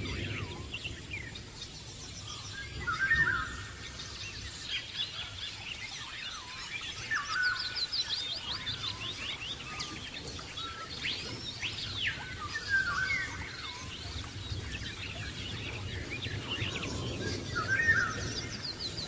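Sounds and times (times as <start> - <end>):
birds singing and chirping: 0.0 - 19.0.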